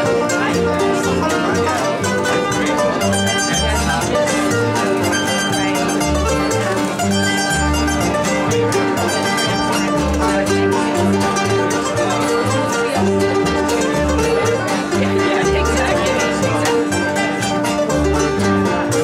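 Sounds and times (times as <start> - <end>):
plucked upright bass: 0.0 - 19.0
string band playing: 0.0 - 19.0.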